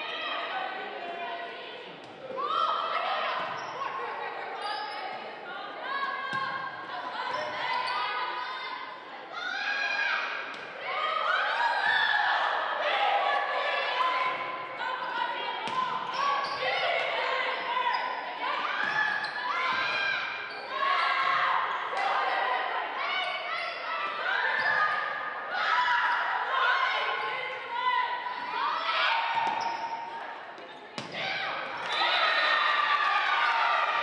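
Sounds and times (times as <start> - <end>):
shoes squeaking on gym floor: 29.4 - 31.0.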